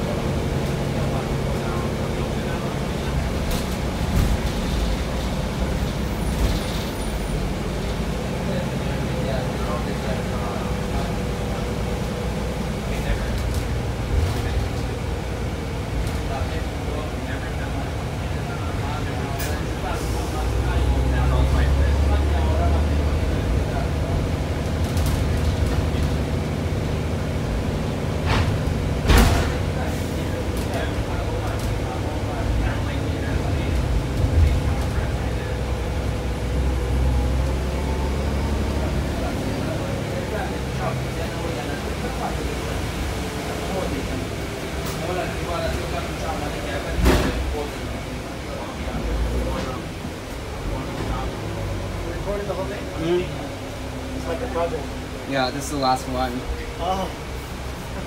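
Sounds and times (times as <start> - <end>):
bus diesel engine drone: 0.0 - 58.0.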